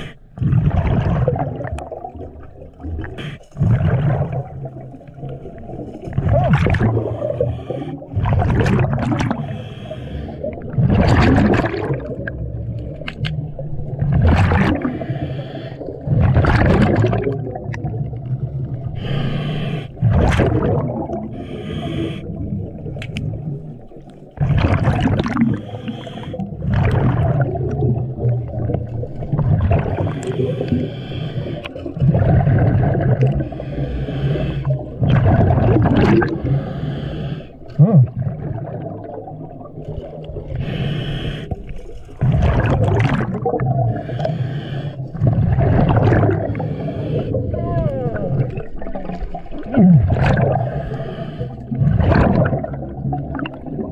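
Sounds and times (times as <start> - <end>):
exhaled bubbles rushing: 0.0 - 9.7, 10.3 - 15.2, 15.8 - 19.2, 19.9 - 21.6, 22.2 - 30.9, 31.6 - 36.9, 37.5 - 53.9
scuba regulator hiss: 19.0 - 19.9, 40.6 - 41.6.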